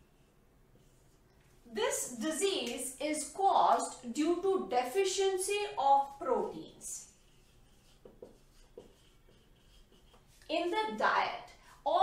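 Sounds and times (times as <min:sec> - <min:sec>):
marker scratching on whiteboard: 0:00.0 - 0:01.6, 0:04.9 - 0:11.4.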